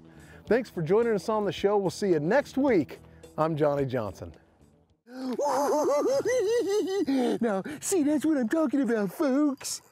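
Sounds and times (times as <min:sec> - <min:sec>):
man laughing: 0:05.1 - 0:08.3.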